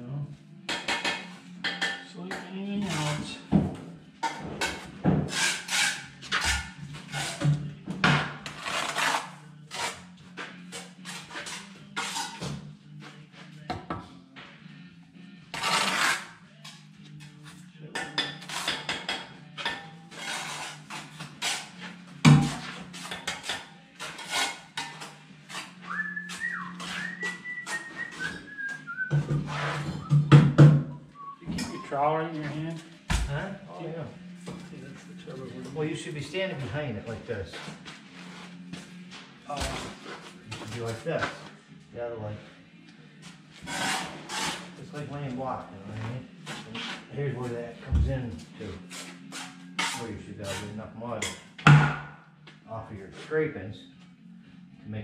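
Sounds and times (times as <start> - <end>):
trowel scraping on brick: 2.8 - 3.3, 4.2 - 7.6, 8.5 - 10.1, 10.8 - 12.5, 15.5 - 16.3, 20.1 - 27.9, 43.6 - 44.8, 48.9 - 50.8
person whistling: 25.9 - 29.2, 30.9 - 31.9.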